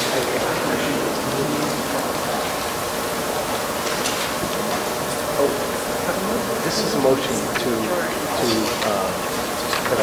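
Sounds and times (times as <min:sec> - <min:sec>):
faint crowd murmur: 0:00.0 - 0:10.0
steady background hiss: 0:00.0 - 0:10.0.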